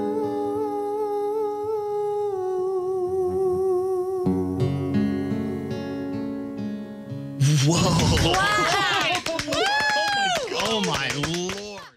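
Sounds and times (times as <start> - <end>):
acoustic guitar chord: 3.1 - 7.6.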